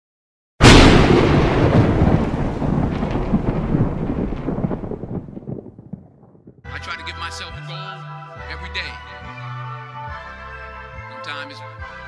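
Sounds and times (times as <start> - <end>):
rumbling thunder-like boom: 0.6 - 6.7.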